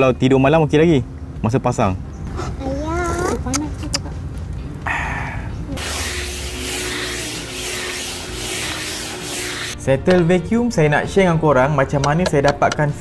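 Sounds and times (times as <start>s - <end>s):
handheld vacuum cleaner running: 5.8s - 9.8s.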